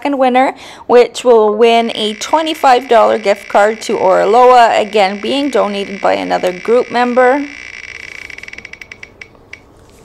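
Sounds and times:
spinning wheel ticking: 1.9 - 9.7.

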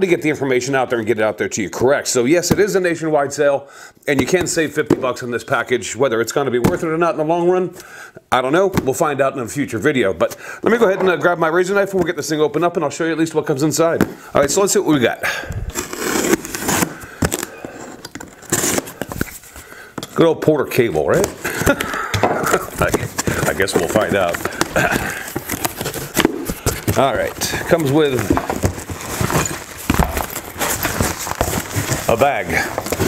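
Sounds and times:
cardboard scraping and rustling: 15.6 - 19.6, 22.4 - 33.0
small knocks and crackles: 21.1 - 33.0.

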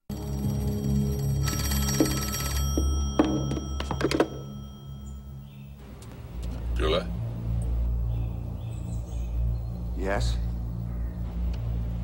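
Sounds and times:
telephone bell ringing: 1.2 - 5.4
low music drone: 4.4 - 12.0.

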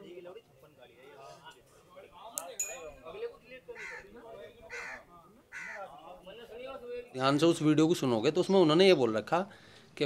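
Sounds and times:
crowd of men chattering: 0.0 - 8.4.

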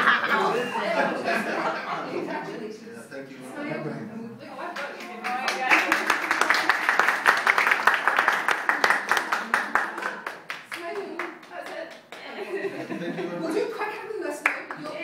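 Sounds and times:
people clapping: 4.7 - 12.7, 14.4 - 15.0.

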